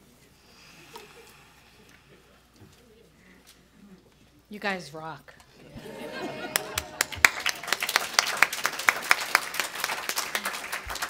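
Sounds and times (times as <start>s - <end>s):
faint low murmurs: 0.0s - 4.5s
audience rustling: 5.5s - 11.0s.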